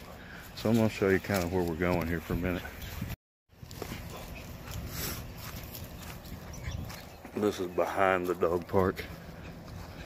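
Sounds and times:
footsteps through dry grass: 0.0s - 10.0s
wind rumble on microphone: 2.2s - 7.2s.

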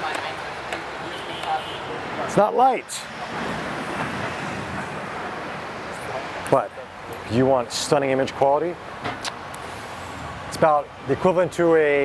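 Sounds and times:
passing vehicles rushing: 0.0s - 12.0s.

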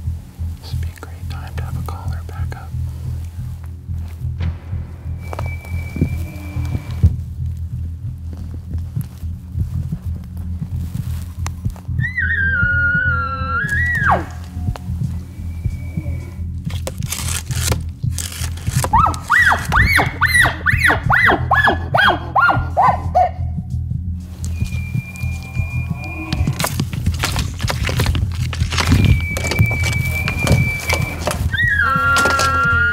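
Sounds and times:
low steady hum: 0.0s - 32.9s
elk bugling whistle: 5.0s - 7.1s, 12.0s - 16.5s, 18.9s - 23.0s, 24.4s - 26.8s, 28.7s - 32.9s
elk squealing yelps: 12.0s - 14.5s, 18.9s - 23.3s, 24.6s - 26.7s, 28.9s - 32.9s.

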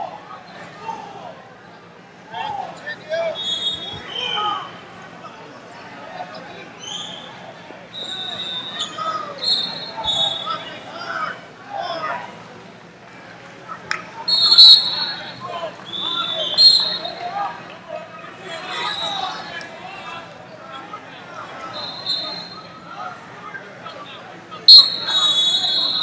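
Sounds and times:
crowd chatter: 0.0s - 26.0s
referee's whistle blowing: 3.4s - 4.4s, 8.0s - 10.5s, 14.3s - 15.4s, 16.0s - 17.1s, 21.8s - 22.7s, 24.7s - 26.0s.

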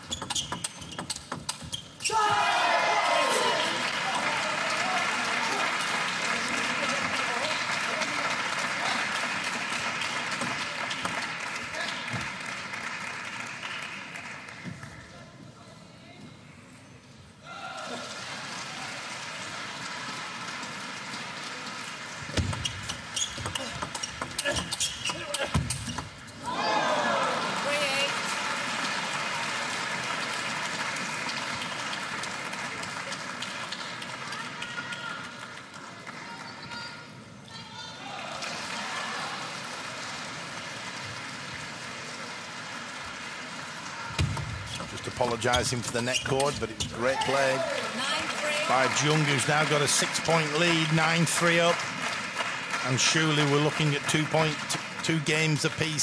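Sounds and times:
crowd cheering and shouting: 2.0s - 5.8s, 26.4s - 28.9s, 47.0s - 49.4s.

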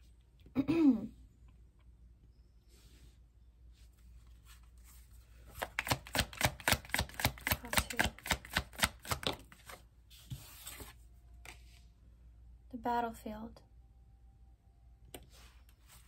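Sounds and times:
cards being shuffled: 4.2s - 11.8s
cards sliding: 4.5s - 11.6s.

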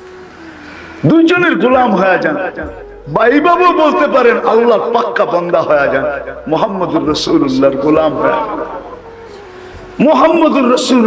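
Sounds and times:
man preaching into a microphone: 1.0s - 9.0s, 10.0s - 11.0s.

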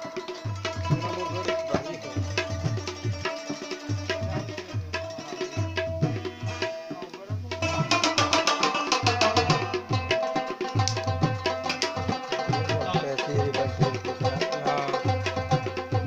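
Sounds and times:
tabla bass drum strokes: 0.0s - 16.0s.

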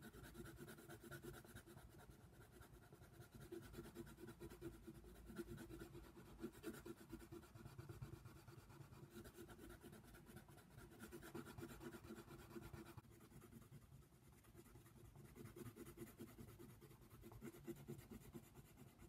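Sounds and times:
pencil scratching on paper: 0.0s - 19.0s.

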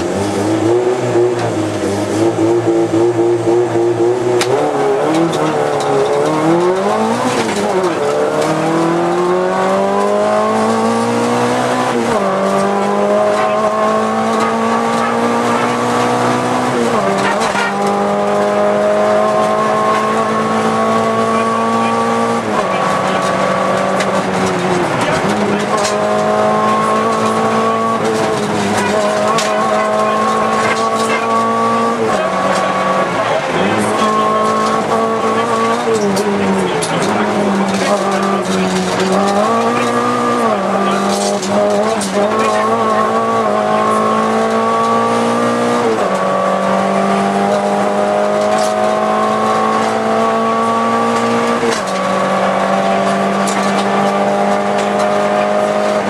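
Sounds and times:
car engine revving in cabin: 0.0s - 56.0s.

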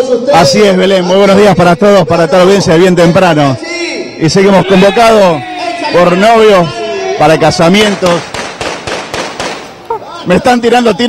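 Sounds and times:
firecrackers cracking: 7.8s - 10.1s.

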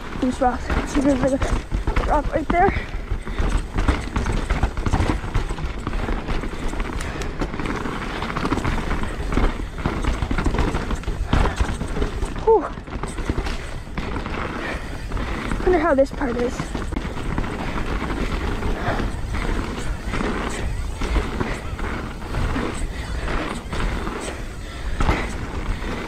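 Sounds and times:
bike knocking and rattling: 0.0s - 26.0s
tyres crunching over gravel: 0.0s - 26.0s.

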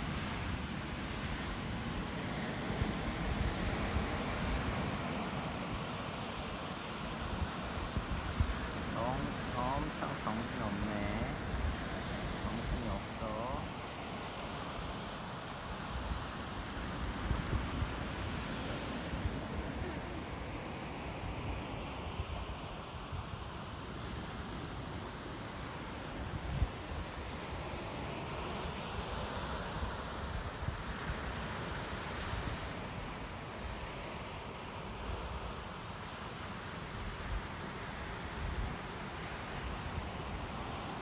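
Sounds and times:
ocean surf breaking on rocks: 0.0s - 41.0s.

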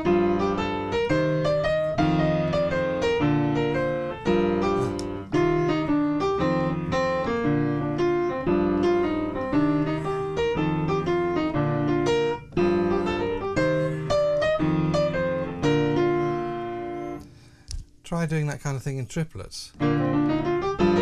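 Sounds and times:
jazz piano playing: 0.0s - 17.5s, 19.7s - 21.0s.

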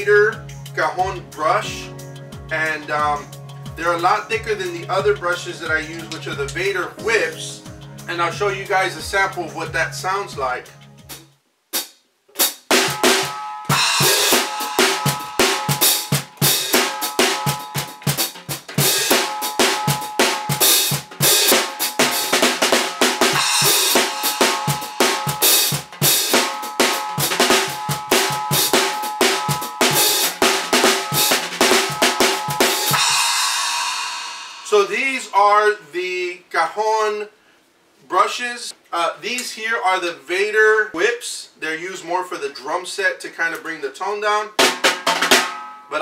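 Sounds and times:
drum kit played with brush rods: 0.0s - 35.7s, 44.5s - 46.0s
cymbal ringing: 12.8s - 35.3s, 45.4s - 46.0s.

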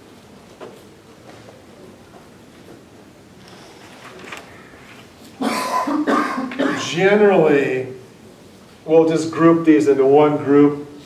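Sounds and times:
person coughing: 5.4s - 7.0s.

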